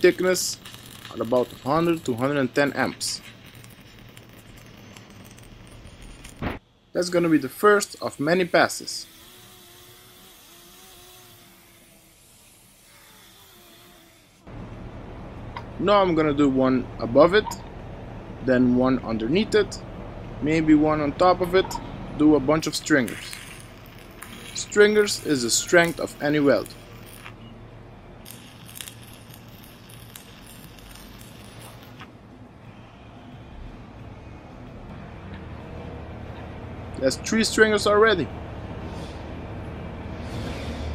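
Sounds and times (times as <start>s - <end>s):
welding arc sizzling hiss: 0.0s - 14.5s, 22.6s - 27.4s, 28.2s - 32.1s
low steady background noise: 0.0s - 40.2s.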